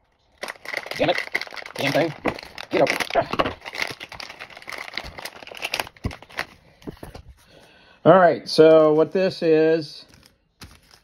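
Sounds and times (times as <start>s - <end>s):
plastic bag crinkling and tearing: 0.0s - 7.3s.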